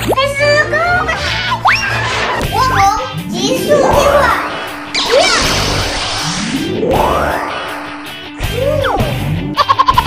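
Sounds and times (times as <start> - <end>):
background music: 0.0 - 10.0
gliding cartoon sound effects: 3.1 - 9.2.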